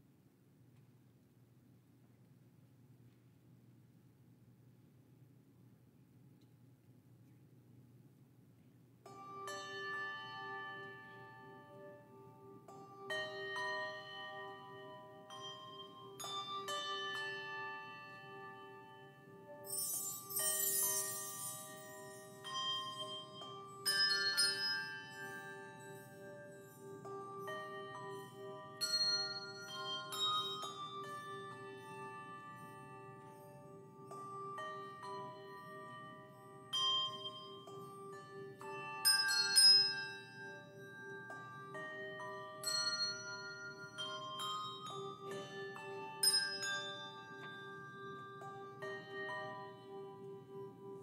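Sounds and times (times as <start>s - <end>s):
handbell choir playing: 9.2s - 51.0s.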